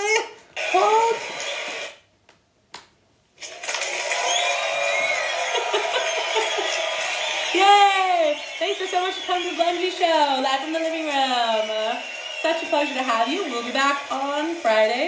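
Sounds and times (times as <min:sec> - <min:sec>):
people talking: 0:00.0 - 0:01.2, 0:07.5 - 0:15.0
canned crowd cheering and applause: 0:03.4 - 0:15.0.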